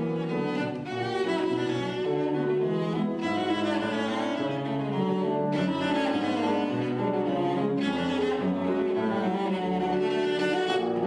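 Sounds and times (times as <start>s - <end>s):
bowed cello classical piece: 0.0s - 11.0s.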